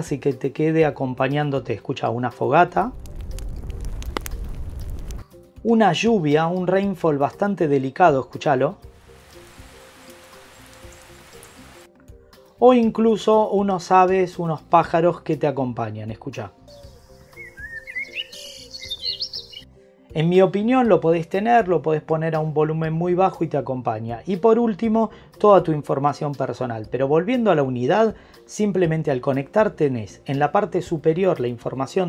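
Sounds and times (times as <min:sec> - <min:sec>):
fire crackling and popping: 0:02.8 - 0:05.3, 0:08.9 - 0:11.9
low rumble: 0:02.9 - 0:05.2
bird chirping: 0:10.4 - 0:11.8, 0:16.7 - 0:19.7.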